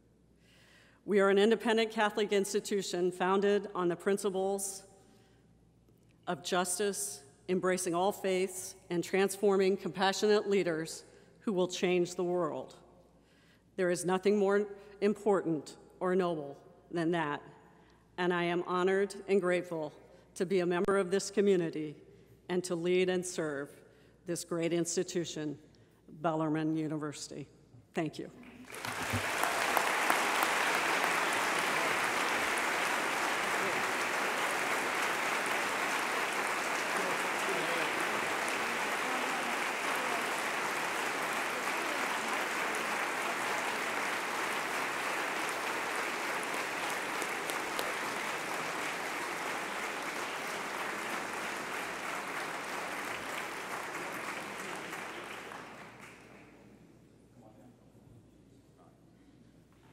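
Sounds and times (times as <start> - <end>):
audience applauding: 28.6 - 56.4.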